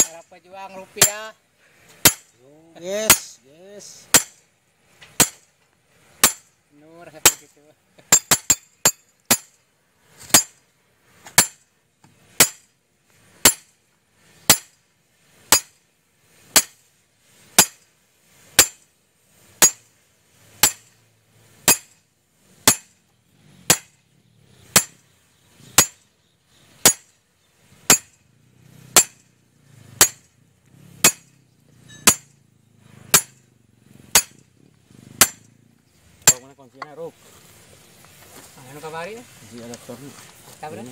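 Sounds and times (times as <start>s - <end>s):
sledgehammer striking steel pipe: 1.0s - 1.3s, 2.0s - 2.3s, 4.1s - 4.4s, 5.2s - 5.5s, 6.2s - 6.5s, 8.1s - 9.6s, 10.3s - 10.6s, 11.3s - 11.6s, 12.4s - 12.6s, 13.4s - 13.7s, 14.5s - 14.8s, 15.5s - 15.8s, 16.5s - 16.8s, 17.6s - 17.8s, 18.6s - 18.8s, 19.6s - 19.8s, 20.6s - 20.9s, 21.6s - 22.0s, 22.6s - 22.9s, 23.7s - 24.0s, 24.7s - 25.0s, 25.8s - 26.0s, 26.8s - 27.1s, 27.9s - 28.2s, 28.9s - 29.3s, 30.0s - 30.3s, 31.0s - 31.3s, 31.9s - 32.3s, 33.1s - 33.4s, 34.1s - 34.4s, 35.2s - 35.5s, 36.2s - 36.6s.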